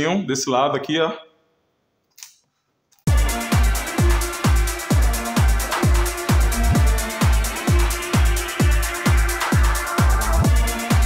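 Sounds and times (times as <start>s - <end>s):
electronic dance music: 3.1s - 11.0s.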